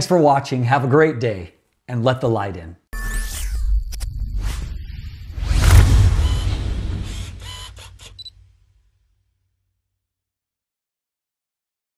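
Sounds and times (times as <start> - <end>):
deep swell: 5.4 - 8.3.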